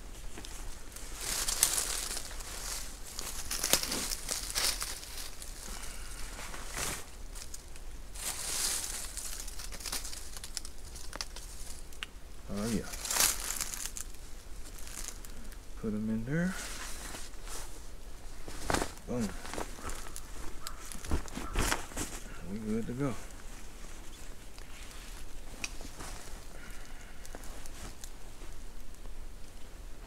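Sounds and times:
fabric bag rustling and crinkling: 0:00.0 - 0:11.9, 0:12.5 - 0:15.5, 0:16.4 - 0:28.7
dry leaves rustling underfoot: 0:00.0 - 0:30.0.

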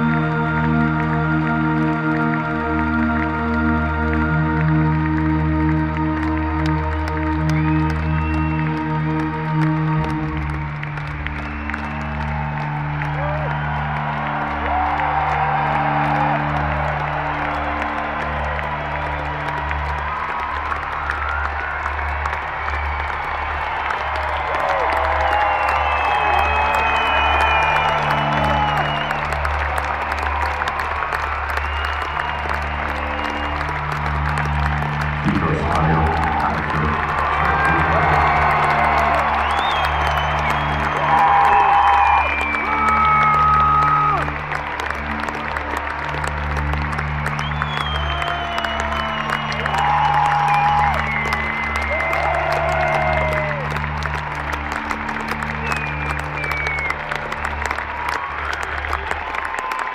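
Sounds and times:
low synth bass notes: 0:00.0 - 0:11.1
crowd cheering and whistling: 0:00.0 - 0:59.9
crowd clapping: 0:00.0 - 0:59.9.

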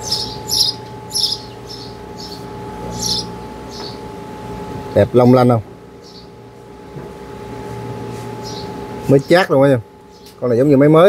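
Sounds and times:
bird chirping: 0:00.0 - 0:04.1, 0:06.0 - 0:06.4, 0:08.4 - 0:10.4
steady hum: 0:00.0 - 0:11.0.

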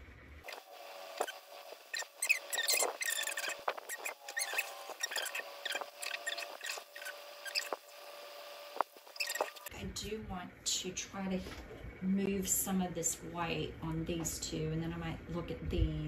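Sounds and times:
faint motor hum: 0:00.0 - 0:16.0
stir stick squeaking in resin: 0:01.2 - 0:07.9, 0:09.1 - 0:09.7.

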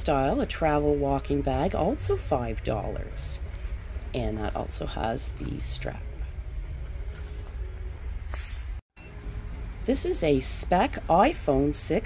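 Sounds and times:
woman's voice: 0:00.0 - 0:03.4, 0:04.1 - 0:06.4, 0:09.9 - 0:12.0
faint background music: 0:00.0 - 0:12.0
store ambience hum: 0:00.0 - 0:12.0.

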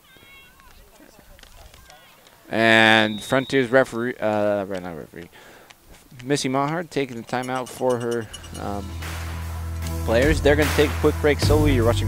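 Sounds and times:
distant people shouting: 0:00.0 - 0:01.1.

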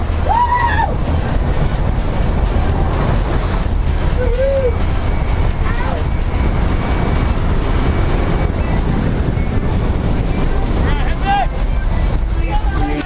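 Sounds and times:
aircraft engine noise: 0:00.0 - 0:13.0
wind rushing: 0:00.0 - 0:13.0.

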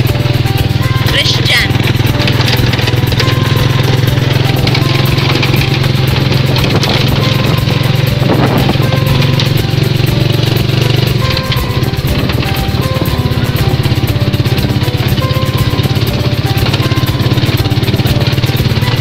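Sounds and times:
motorcycle engine running: 0:00.0 - 0:19.0
music playing: 0:00.0 - 0:19.0.

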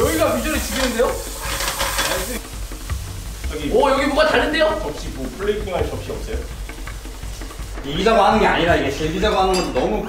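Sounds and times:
food sizzling in frying pan: 0:00.0 - 0:10.0.

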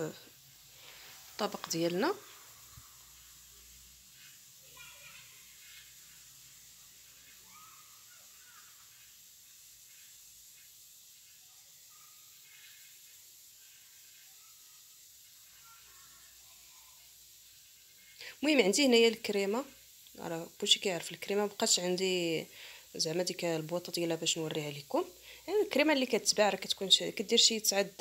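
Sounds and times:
faint background hiss: 0:00.0 - 0:28.0.

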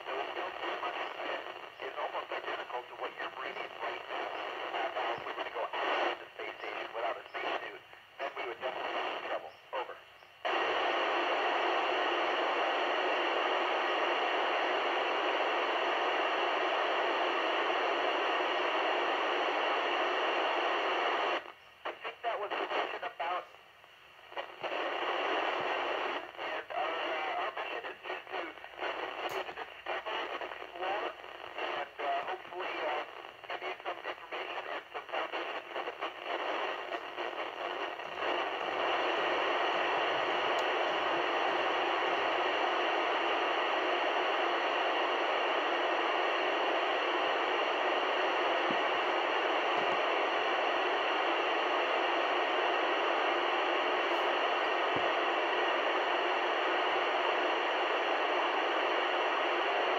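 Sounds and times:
radio static bursts: 0:00.0 - 0:23.6, 0:24.2 - 0:59.9
steady radio hiss: 0:00.0 - 0:59.9.

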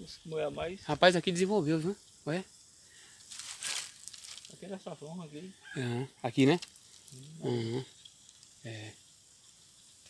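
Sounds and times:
dry palm fronds rustling: 0:03.2 - 0:05.0, 0:06.3 - 0:07.4.

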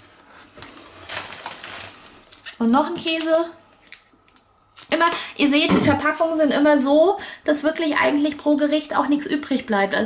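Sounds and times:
plastic bag rustling: 0:00.0 - 0:05.2.

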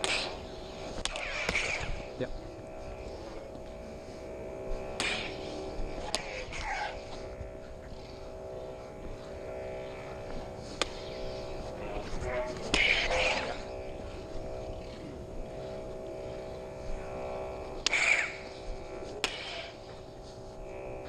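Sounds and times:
lightsaber clash hits: 0:00.0 - 0:00.4, 0:01.0 - 0:02.0, 0:04.9 - 0:05.4, 0:12.6 - 0:13.6, 0:17.8 - 0:18.4, 0:19.2 - 0:19.7
lightsaber swing swoosh: 0:00.0 - 0:02.2, 0:04.8 - 0:07.4, 0:10.7 - 0:15.1, 0:17.8 - 0:19.8
lightsaber humming: 0:00.0 - 0:21.0.

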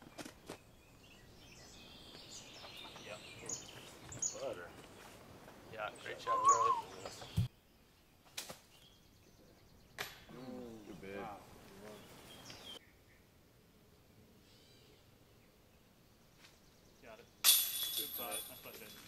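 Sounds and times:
faint voices: 0:05.7 - 0:07.4
disc striking basket chains: 0:17.4 - 0:19.0.

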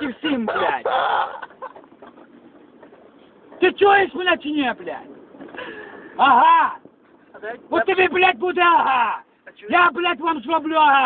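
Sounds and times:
man shouting hoarsely: 0:06.2 - 0:06.8.

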